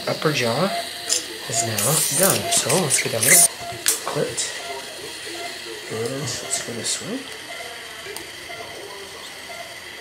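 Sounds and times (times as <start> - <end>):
faint murmured voices: 0.2 - 10.0.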